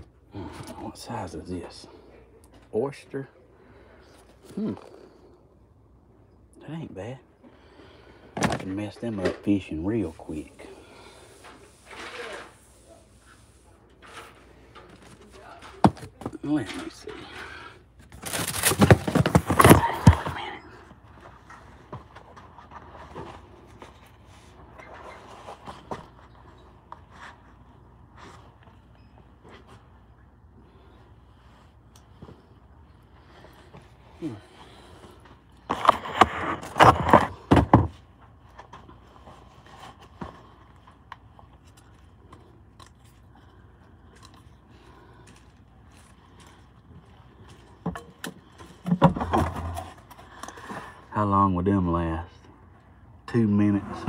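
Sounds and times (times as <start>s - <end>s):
cardboard box scraping and thumping: 18.0s - 20.5s, 35.7s - 38.0s.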